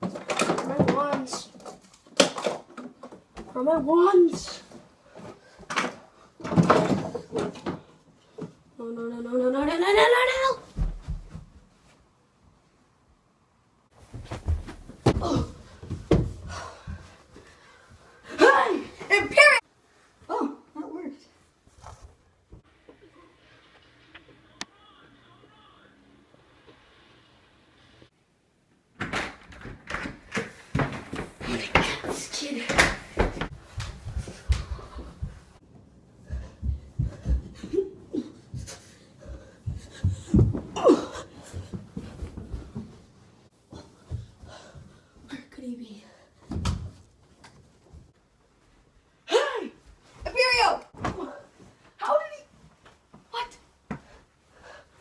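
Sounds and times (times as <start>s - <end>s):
footsteps on carpeted stairs: 9.5s - 12.6s, 13.9s - 18.2s, 29.5s - 45.5s, 46.4s - 49.0s, 49.8s - 55.0s.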